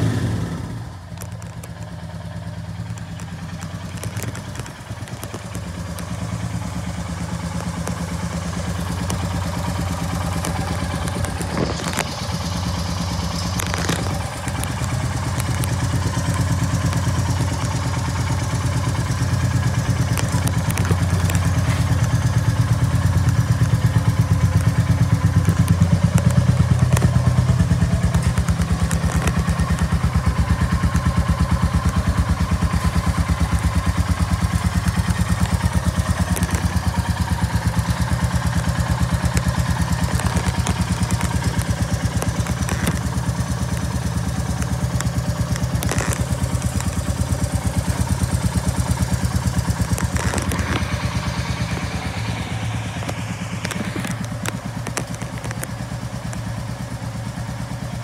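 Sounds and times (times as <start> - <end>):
motorcycle engine idling: 0.0 - 58.0
light clicks: 1.1 - 57.6.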